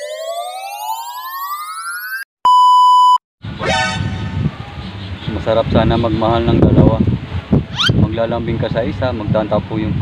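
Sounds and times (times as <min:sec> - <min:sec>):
synthetic tone rising in pitch: 0:00.0 - 0:02.3.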